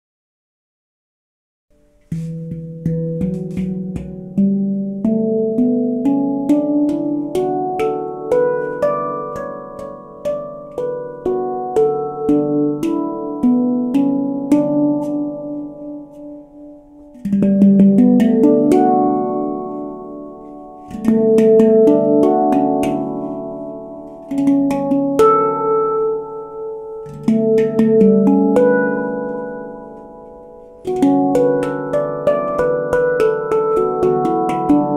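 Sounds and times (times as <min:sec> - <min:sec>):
handpan notes ringing: 0:01.8 - 0:34.9.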